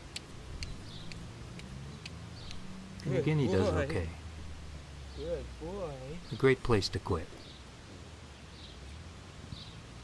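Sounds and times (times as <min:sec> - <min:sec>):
light sharp ticks: 0:00.0 - 0:03.1.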